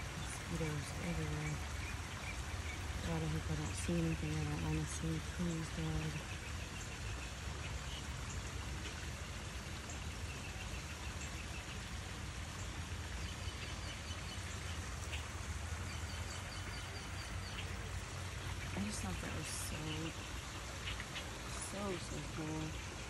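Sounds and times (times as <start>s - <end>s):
stream flowing over stones: 0.0s - 23.0s.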